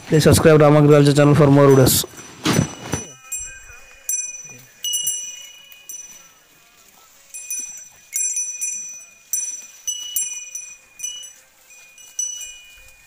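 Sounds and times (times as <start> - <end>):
metal bells on bull's collar ringing: 0.2 - 13.0.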